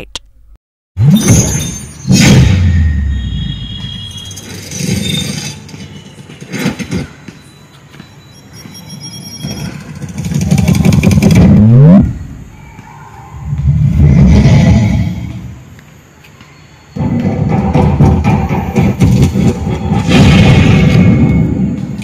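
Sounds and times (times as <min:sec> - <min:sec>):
loud sudden sound: 0:01.0 - 0:05.6, 0:17.0 - 0:21.7
vehicle engine revving: 0:10.0 - 0:12.3.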